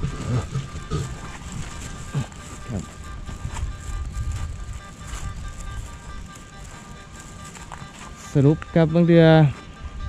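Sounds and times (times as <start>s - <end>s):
wind rumble on microphone: 0.0s - 7.8s, 9.7s - 10.0s
microphone handling noise: 0.0s - 8.8s
faint steady high tones: 0.0s - 10.0s.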